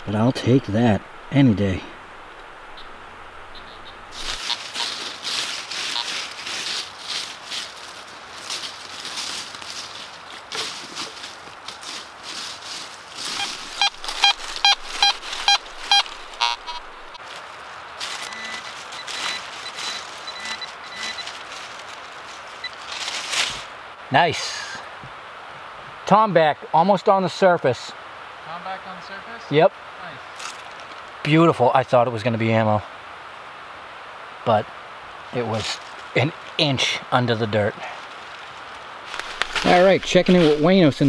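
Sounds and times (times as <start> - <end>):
crunching in dry leaves: 4.0 - 23.8, 30.3 - 31.2, 35.4 - 36.6, 37.5 - 41.0
metal detector beeps: 13.4 - 17.2, 18.1 - 21.4
faint steady tone: 17.8 - 21.4.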